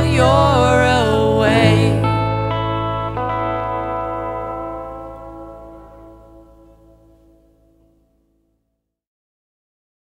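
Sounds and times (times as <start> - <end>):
guitar chord ringing out: 0.0 - 8.2.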